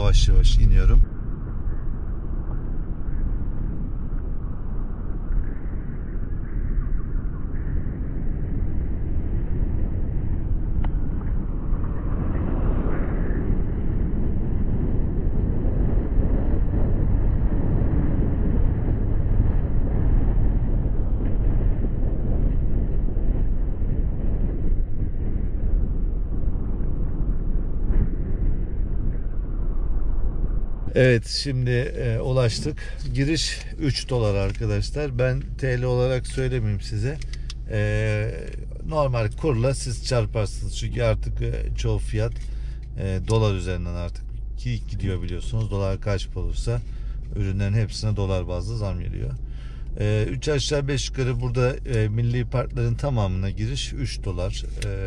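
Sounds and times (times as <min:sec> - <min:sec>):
car tyres rumbling on cobblestones: 0:30.9 - 0:55.0.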